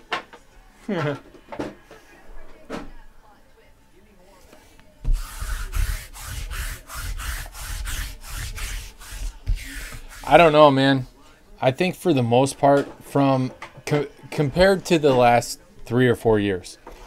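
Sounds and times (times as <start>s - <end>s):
lint roller crackling on table: 5.1s - 10.6s.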